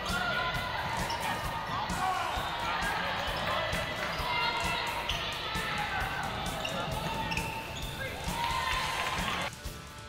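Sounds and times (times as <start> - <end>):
voices in background: 0.0 - 9.5.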